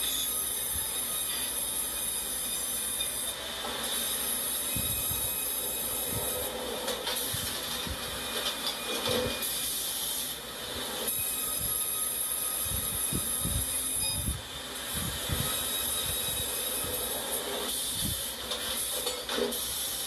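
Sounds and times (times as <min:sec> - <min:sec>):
sawmill machinery running: 0:00.0 - 0:20.0.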